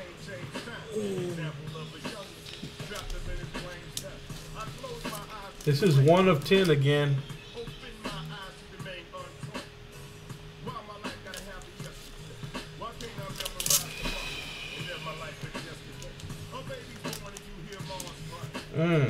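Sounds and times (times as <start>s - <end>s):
quiet music with faint vocals: 0.0s - 19.0s
plastic sleeve crinkle: 2.4s - 6.8s, 11.2s - 14.2s, 15.2s - 18.6s.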